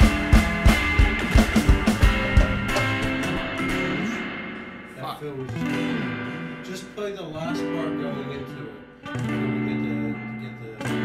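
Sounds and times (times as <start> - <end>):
guitar playing slow notes: 0.0 - 11.0.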